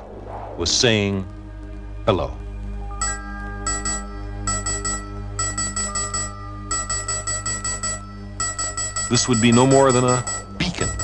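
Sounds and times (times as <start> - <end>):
low hum: 0.0 - 11.0
electronic beeps: 2.9 - 11.0.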